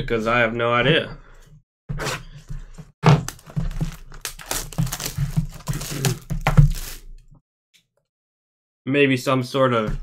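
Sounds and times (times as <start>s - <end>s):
cardboard box crinkling and scraping: 3.3s - 7.0s.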